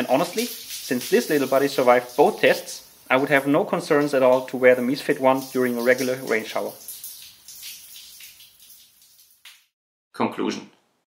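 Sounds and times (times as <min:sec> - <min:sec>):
shower spray running: 0:00.0 - 0:09.7.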